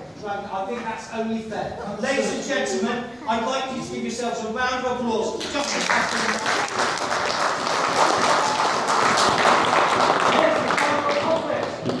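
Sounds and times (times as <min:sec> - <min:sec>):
audience applauding: 0:05.4 - 0:12.0.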